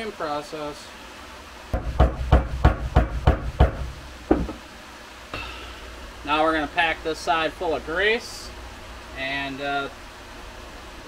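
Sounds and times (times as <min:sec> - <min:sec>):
mallet tapping metal: 0:01.8 - 0:04.6.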